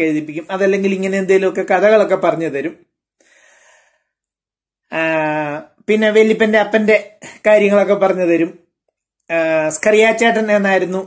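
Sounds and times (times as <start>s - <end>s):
faint intake of breath: 3.2s - 4.2s.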